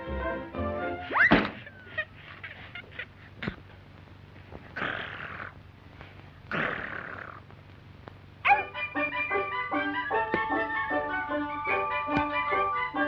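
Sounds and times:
string music: 0.0 - 1.1, 8.6 - 13.0
cartoon dog-like growls: 4.8 - 5.6, 6.5 - 7.4.

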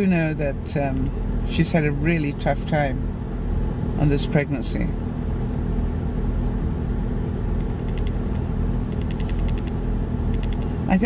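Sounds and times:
car engine and road rumble: 0.0 - 11.0
faint quick ticking: 7.6 - 10.8.

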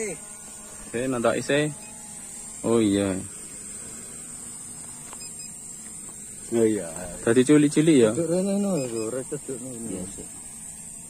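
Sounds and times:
insect chorus: 0.0 - 11.0.

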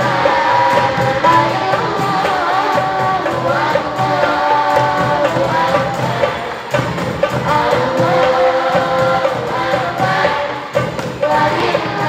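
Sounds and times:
girls singing into microphones: 0.0 - 12.0
hand drums beaten steadily: 0.0 - 12.0.

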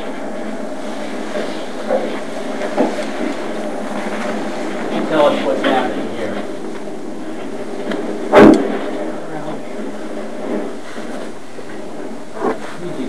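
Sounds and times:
background hiss: 0.0 - 13.0
faint low voices: 7.3 - 13.0
loud short thump: 8.3 - 9.0.

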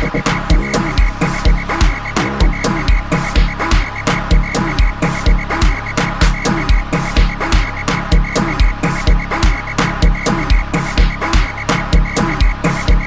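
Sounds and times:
crisp hi-hat ticks: 0.0 - 13.0
electronic dance music: 0.0 - 13.0
heavy kick drum hits: 0.0 - 13.0
swooping bass drops: 0.0 - 13.0.

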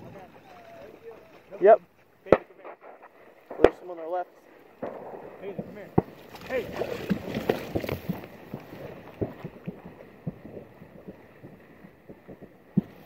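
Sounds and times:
distant shotgun shots: 2.3 - 13.0.

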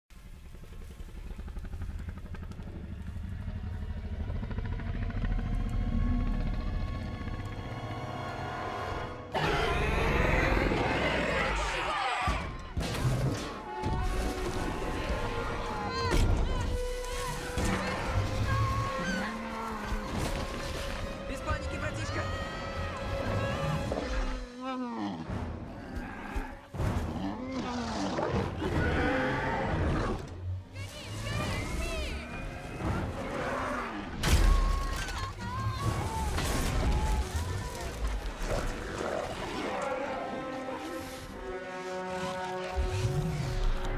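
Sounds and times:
tense music: 0.1 - 43.9
dinosaur roar: 9.4 - 12.5, 23.1 - 30.4, 32.1 - 34.2, 36.9 - 43.9.

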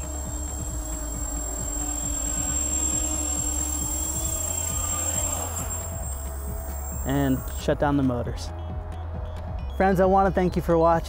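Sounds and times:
quadcopter motors whining: 0.0 - 7.7
background music: 0.0 - 11.0.

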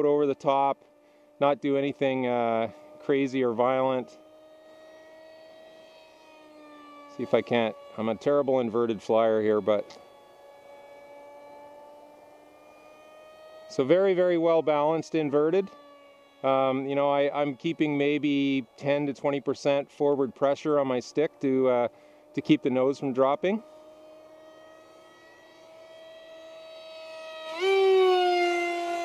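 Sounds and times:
model plane motor whine: 0.0 - 29.0.

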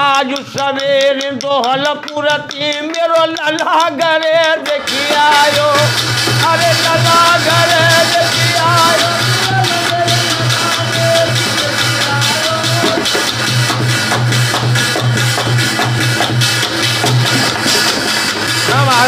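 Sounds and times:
person singing: 0.0 - 14.2
dholak drumming: 0.0 - 19.0.

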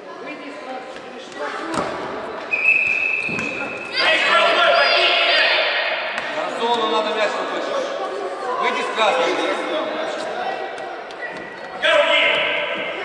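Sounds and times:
children shouting in echoing gym: 3.5 - 6.2.

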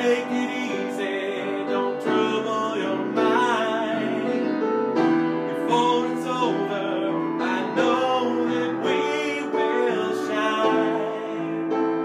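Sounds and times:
grand piano: 0.0 - 12.0
man singing: 0.0 - 12.0.

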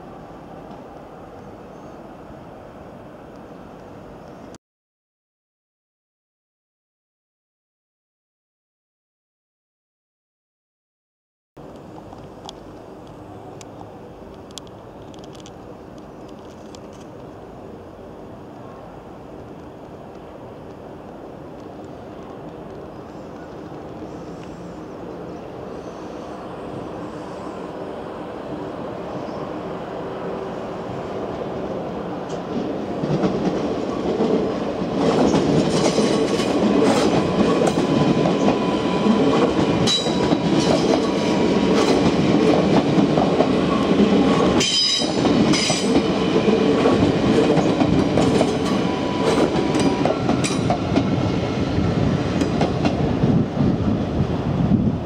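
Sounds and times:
electric train passing: 11.6 - 55.0
rumble of wheels on rails: 11.6 - 55.0.

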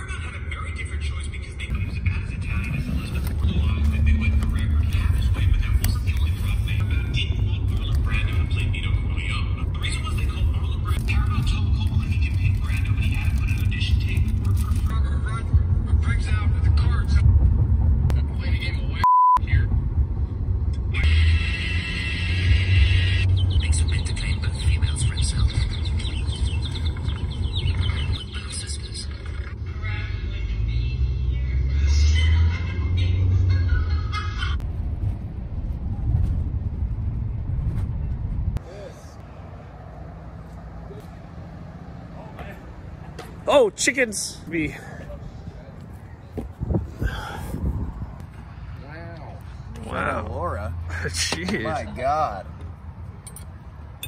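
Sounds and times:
voices: 0.0 - 17.2, 20.9 - 34.6, 38.6 - 53.5
car cabin road rumble: 0.0 - 43.6, 44.8 - 48.6, 49.6 - 54.0
censor bleep: 19.0 - 19.4.

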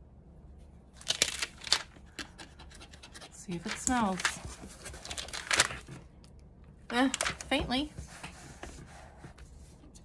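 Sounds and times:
paper and plastic crinkling: 1.0 - 2.3, 3.5 - 6.1, 6.9 - 8.4.

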